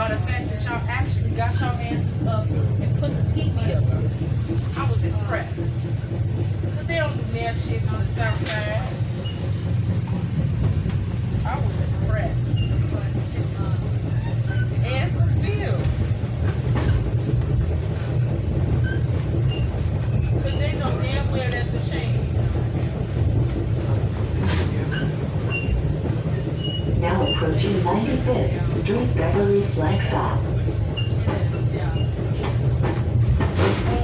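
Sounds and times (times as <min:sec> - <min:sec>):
passengers talking: 0:00.0 - 0:34.0
train rumbling: 0:00.0 - 0:34.0.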